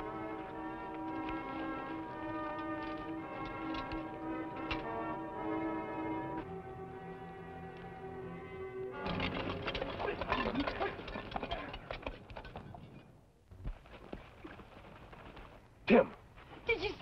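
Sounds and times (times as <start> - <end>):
galloping horse hooves: 0.0 - 5.2, 9.0 - 17.0
horse-drawn wagon: 0.0 - 5.9, 9.0 - 17.0.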